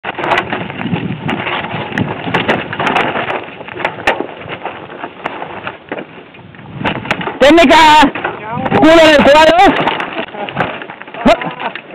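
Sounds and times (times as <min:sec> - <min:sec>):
bike tyres crunching on gravel: 0:00.0 - 0:11.9
stones and bike parts knocking: 0:00.0 - 0:11.9.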